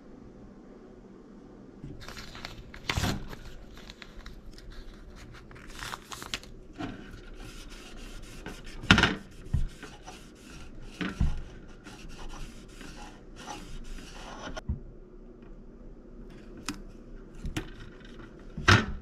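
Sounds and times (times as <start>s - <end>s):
paper sticker rustling and rubbing: 1.9s - 14.6s.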